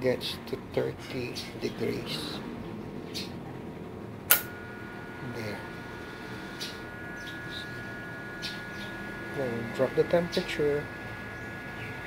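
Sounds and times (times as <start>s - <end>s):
bird chirps: 6.5s - 9.0s, 11.3s - 12.0s.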